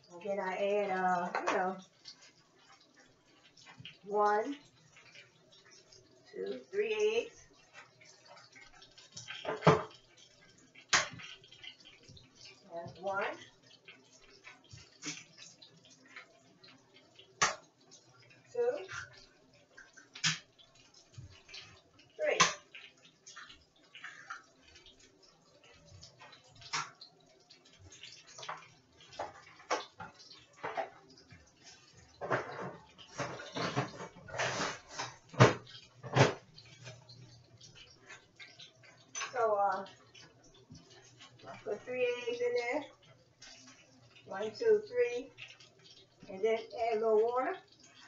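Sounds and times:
eggs cracked against a bowl: 10.8s - 11.8s, 17.3s - 17.8s, 20.0s - 20.6s.

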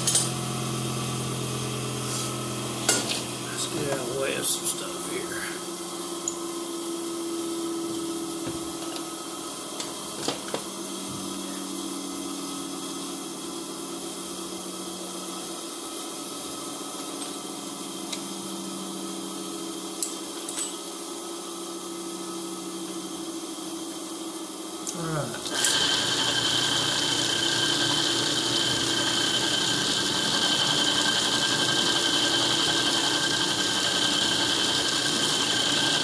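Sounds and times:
machine hum with hiss: 0.0s - 13.8s.

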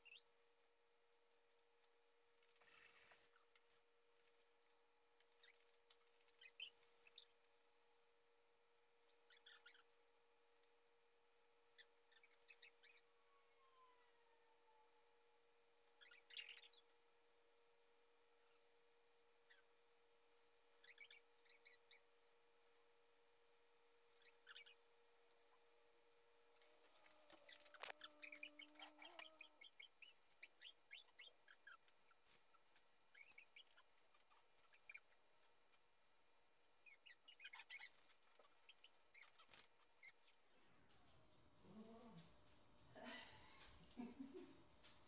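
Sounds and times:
faint appliance hum: 0.0s - 45.0s
small dogs whimpering: 26.9s - 29.7s, 41.6s - 45.0s.

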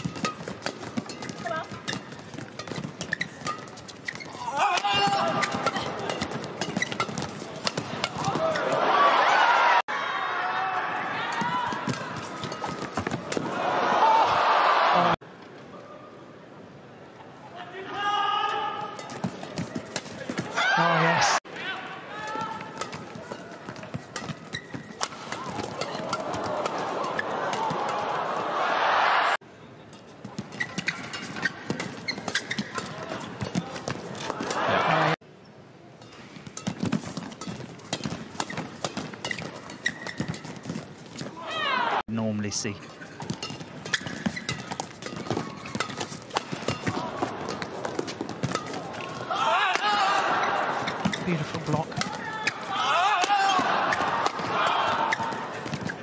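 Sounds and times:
arena crowd noise: 4.4s - 36.5s, 41.2s - 43.9s, 44.9s - 56.0s
crowd cheering: 7.7s - 15.2s, 20.3s - 22.7s, 25.0s - 29.4s, 34.1s - 35.2s, 41.4s - 42.1s, 46.7s - 56.0s
rackets striking shuttlecock: 22.3s - 28.0s, 43.2s - 49.1s.

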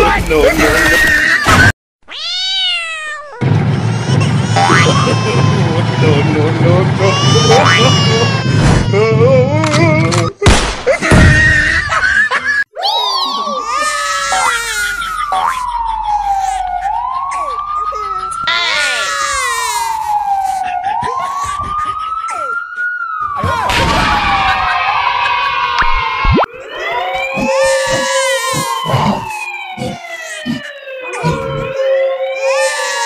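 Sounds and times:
siren-like wail: 13.1s - 33.0s
explosion: 23.7s - 24.8s.

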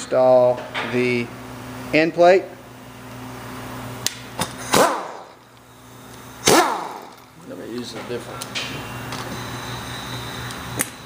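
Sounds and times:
air tool whine: 4.5s - 7.4s, 8.6s - 11.0s.

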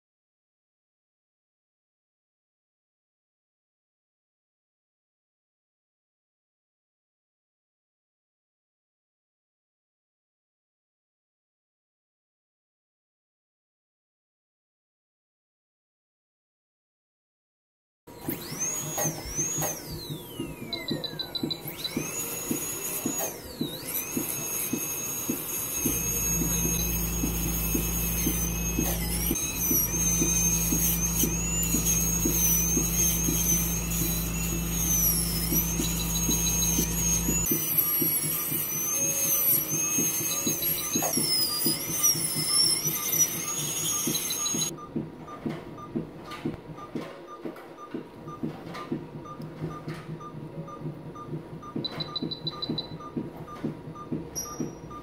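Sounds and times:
dental drill whining: 18.1s - 44.8s, 51.6s - 55.0s.

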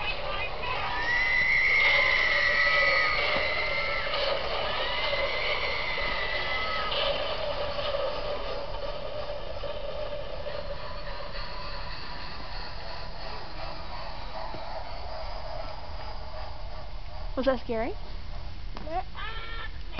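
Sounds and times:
toy playing spooky wail: 0.0s - 16.4s, 19.2s - 19.8s
low eerie tones: 0.0s - 19.3s.

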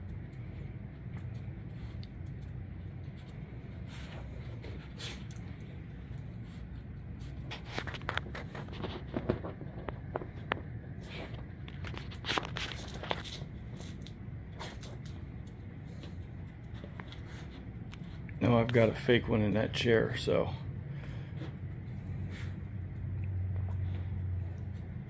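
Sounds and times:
dog paws scraping and clicking: 0.0s - 25.0s
low hum: 0.0s - 25.0s.

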